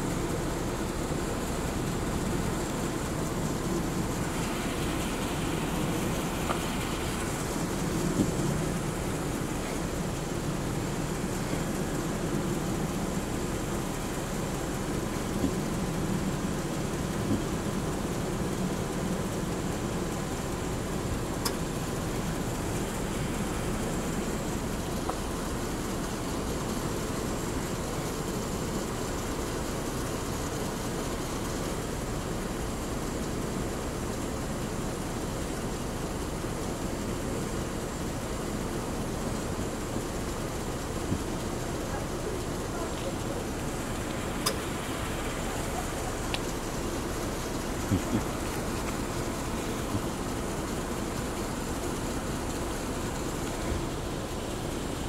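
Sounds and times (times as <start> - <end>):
road noise rumble and hiss: 0.0 - 55.0
faint clicks: 43.9 - 46.6.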